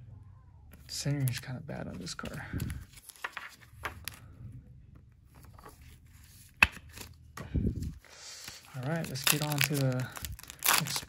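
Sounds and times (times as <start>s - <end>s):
faint rustling of card: 0.7s - 11.0s.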